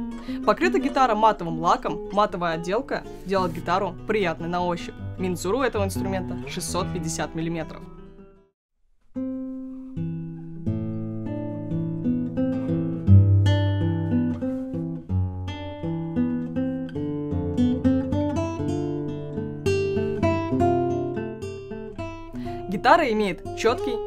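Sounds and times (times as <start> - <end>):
fingerstyle classical guitar: 0.0 - 8.5, 9.1 - 24.0.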